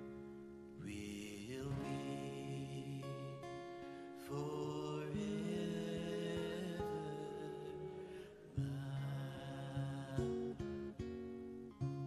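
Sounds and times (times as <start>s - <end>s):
acoustic guitar and piano music: 0.0s - 12.0s.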